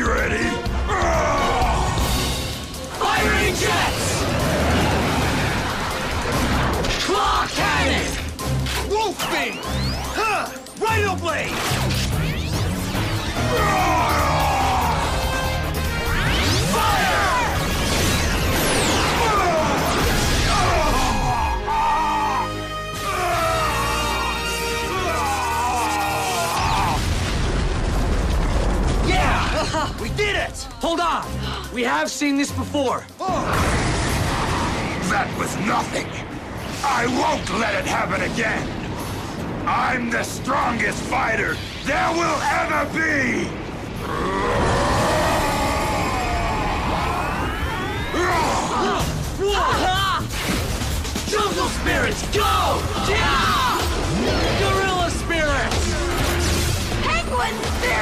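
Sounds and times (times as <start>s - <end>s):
dramatic cartoon background music: 0.0s - 58.0s
dense rushing noise: 2.6s - 8.2s, 34.1s - 49.3s
energy weapons firing: 16.0s - 21.0s.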